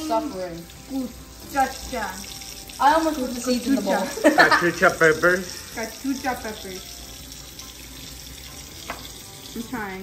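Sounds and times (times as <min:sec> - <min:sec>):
tap running into sink: 0:07.5 - 0:09.9.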